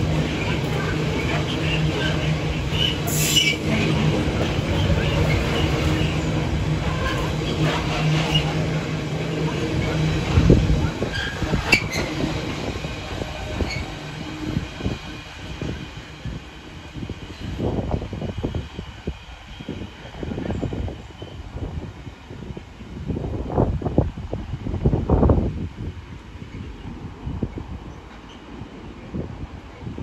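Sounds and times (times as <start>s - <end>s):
freight train rolling over rails: 0.0s - 30.0s.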